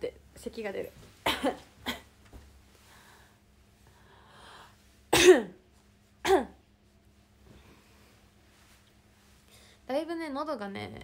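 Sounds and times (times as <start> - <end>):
woman coughing: 1.2 - 2.1, 5.1 - 5.6, 6.2 - 6.6.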